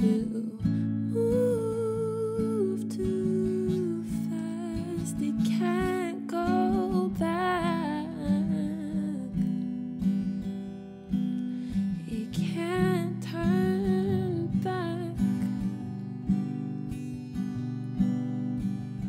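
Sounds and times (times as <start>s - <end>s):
person singing: 0.0s - 9.4s
acoustic guitar strumming: 0.0s - 19.0s.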